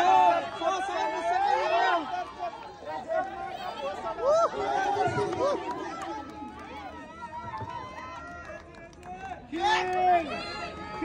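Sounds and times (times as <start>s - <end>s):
loud drawn-out shouted call: 0.0s - 6.2s
outdoor crowd chatter: 0.0s - 11.0s.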